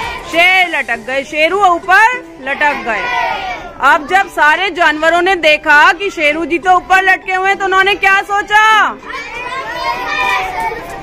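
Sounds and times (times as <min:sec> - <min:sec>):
young children answering together: 0:02.7 - 0:04.3, 0:09.0 - 0:11.0.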